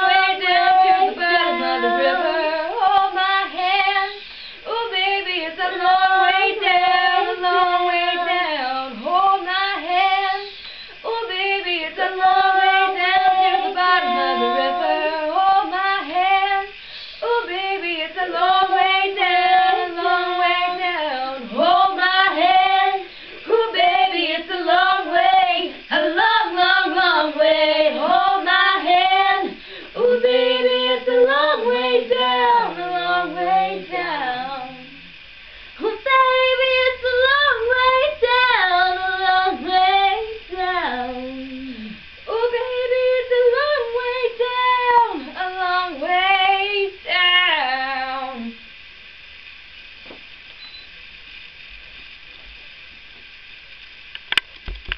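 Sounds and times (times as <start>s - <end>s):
young women singing unaccompanied: 0.0s - 48.6s.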